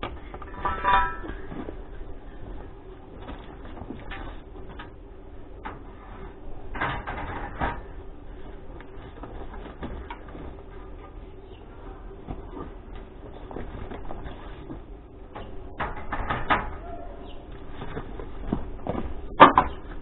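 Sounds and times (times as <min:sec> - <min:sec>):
metal bars clattering onto pile: 0:00.4 - 0:01.8.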